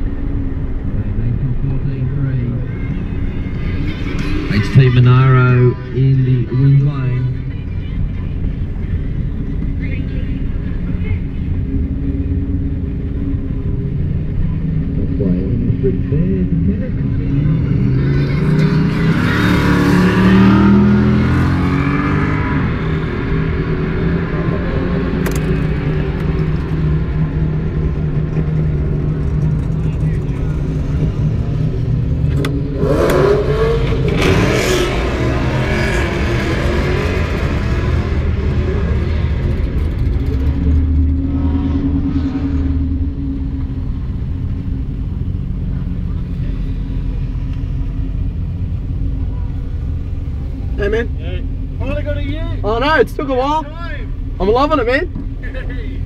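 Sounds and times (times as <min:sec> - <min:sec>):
car engine at low speed: 0:00.0 - 0:56.0.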